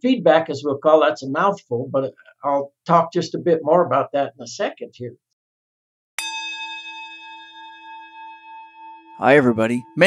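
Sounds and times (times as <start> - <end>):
struck bell ringing: 6.2 - 10.0.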